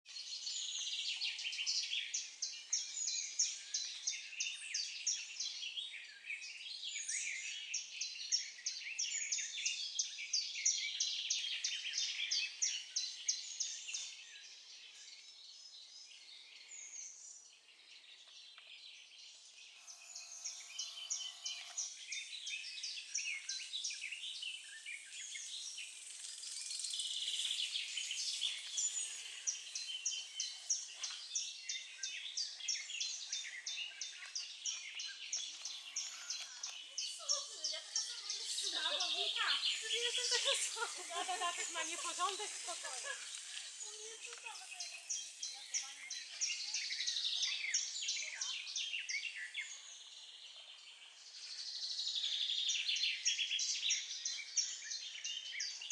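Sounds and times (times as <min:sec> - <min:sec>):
songbirds singing: 0:00.0 - 0:55.9.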